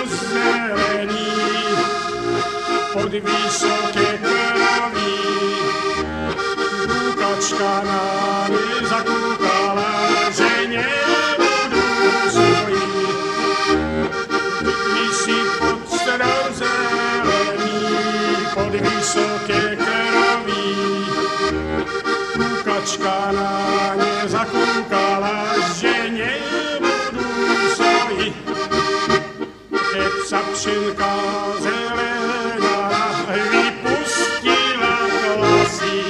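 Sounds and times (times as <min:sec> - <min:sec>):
button accordion folk tune: 0:00.0 - 0:36.0.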